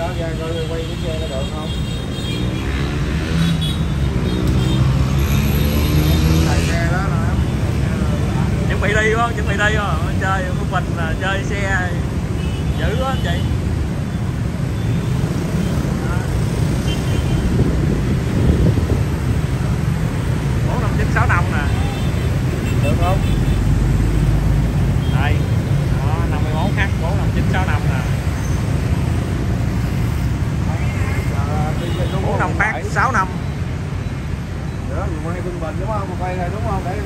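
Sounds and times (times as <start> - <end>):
city road traffic rumble: 0.0 - 37.0
motorbikes and cars passing: 0.0 - 37.0
people talking: 26.0 - 28.1.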